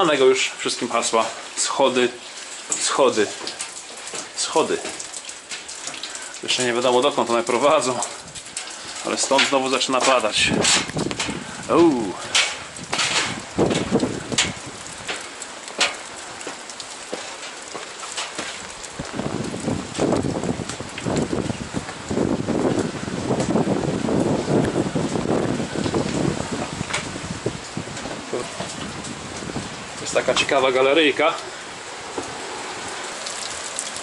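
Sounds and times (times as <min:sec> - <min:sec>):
rain hissing on rock: 0:00.0 - 0:34.0
footsteps on metal grated stairs: 0:02.6 - 0:06.0, 0:09.1 - 0:19.3.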